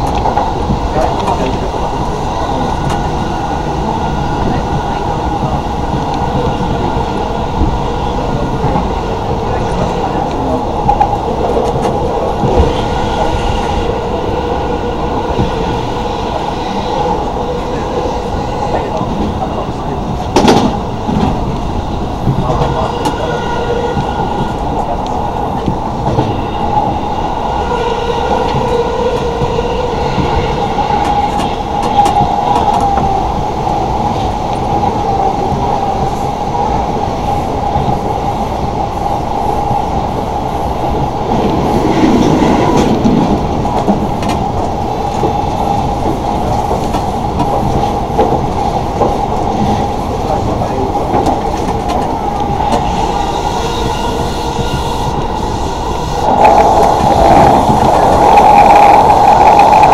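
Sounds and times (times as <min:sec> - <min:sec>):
train running rumble: 0:00.0 - 0:59.9.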